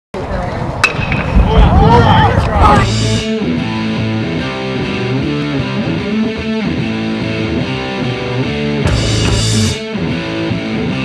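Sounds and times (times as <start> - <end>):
low rumble: 0.8 - 3.3
rock guitar music: 2.6 - 11.0
sharp hit: 2.7 - 3.4.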